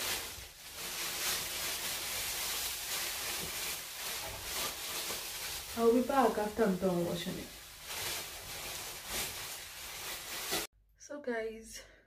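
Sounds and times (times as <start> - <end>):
plastic bag rustling: 0.0 - 10.7.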